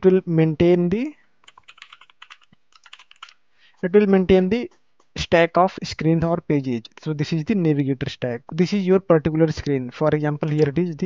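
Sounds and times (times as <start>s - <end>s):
typing on computer keyboard: 1.4s - 3.4s.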